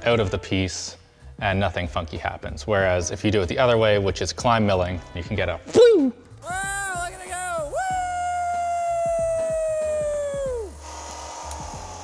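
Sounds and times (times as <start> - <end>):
man shouting woo: 5.7 - 10.8
cutter hissing in metal: 10.7 - 12.0.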